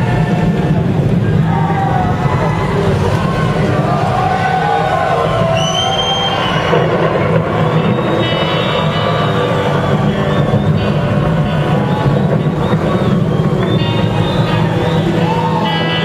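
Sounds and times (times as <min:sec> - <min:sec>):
heavy low drone: 0:00.0 - 0:16.0
short high whistle: 0:05.6 - 0:06.8
live rock band playing: 0:06.3 - 0:16.0.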